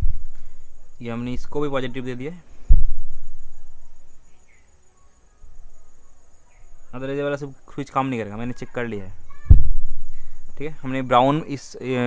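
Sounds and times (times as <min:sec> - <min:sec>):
cricket chirping: 0:00.0 - 0:12.0
low rumble: 0:02.6 - 0:04.2.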